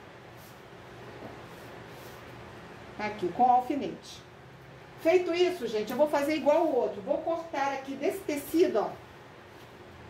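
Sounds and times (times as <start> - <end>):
soft fabric swishes: 0.3 - 2.4.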